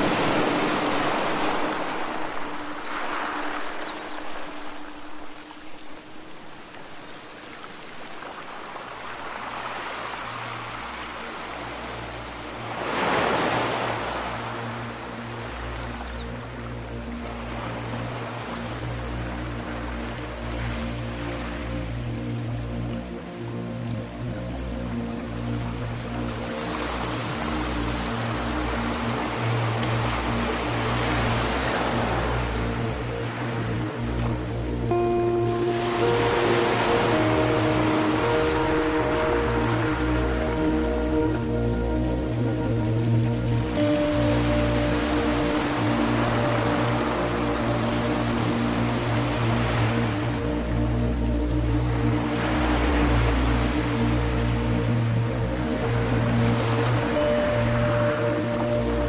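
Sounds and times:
ambient music with drone: 0.0 - 59.0
ocean waves: 0.0 - 59.0.

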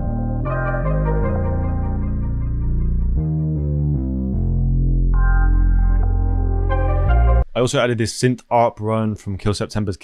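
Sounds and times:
distorted synth bass: 0.0 - 7.4.

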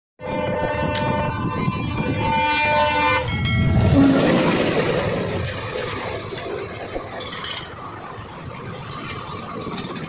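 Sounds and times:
train horn: 0.2 - 4.5
train wheels and coaches rushing past: 0.2 - 10.0.

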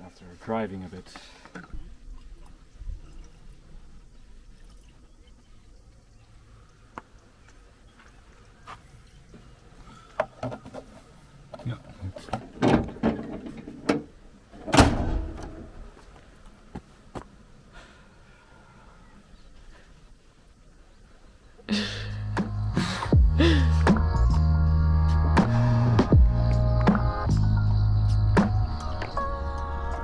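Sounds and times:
bonnet shutting with heavy thunk: 14.6 - 15.7.

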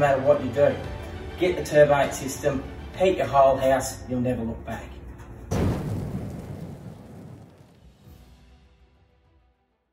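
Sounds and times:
deep boom rushing tail: 5.5 - 8.1.

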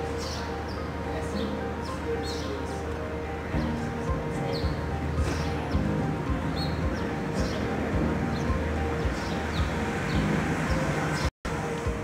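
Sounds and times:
bird chirps: 0.0 - 3.0, 3.6 - 11.3
faint music: 0.0 - 12.0.

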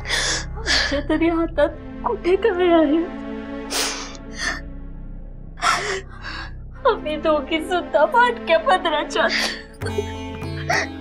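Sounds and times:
soft background music: 0.0 - 11.0
woman crying: 9.2 - 11.0.

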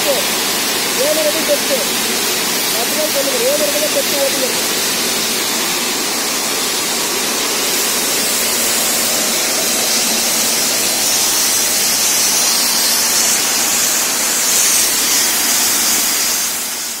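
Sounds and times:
water and slurry rushing from bore: 0.0 - 17.0.

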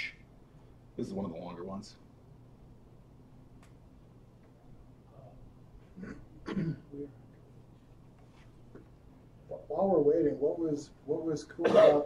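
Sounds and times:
person clearing throat: 6.0 - 7.1, 11.6 - 12.0.

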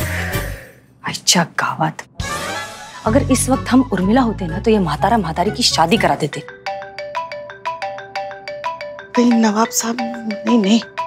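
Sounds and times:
marimba phone ringtone: 6.3 - 11.0.

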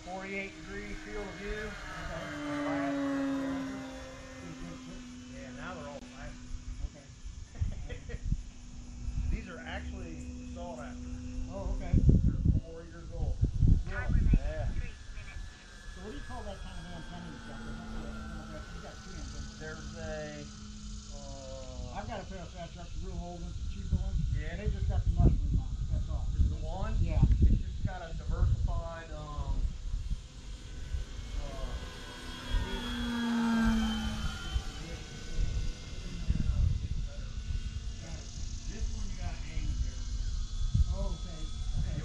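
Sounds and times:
men talking quietly: 0.0 - 42.0
model plane motor whine: 0.0 - 42.0.

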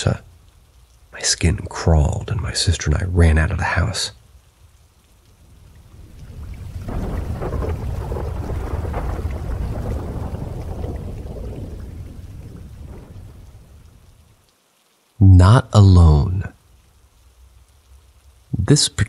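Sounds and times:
rain: 0.0 - 19.0
thunder rumbling: 5.4 - 14.4.

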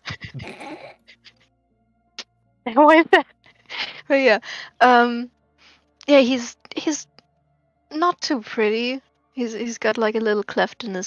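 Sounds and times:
person laughing in breathy bursts: 0.0 - 1.4
faint background music: 0.0 - 11.0.

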